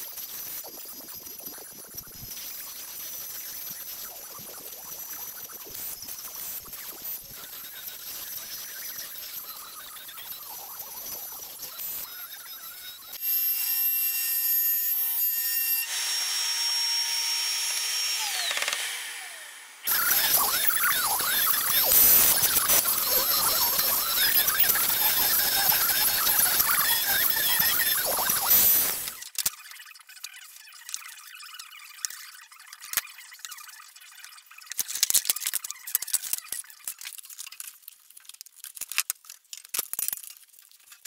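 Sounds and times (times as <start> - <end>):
router spindle whining: 5.8 - 29.2
router cutting wood: 13.1 - 29.2.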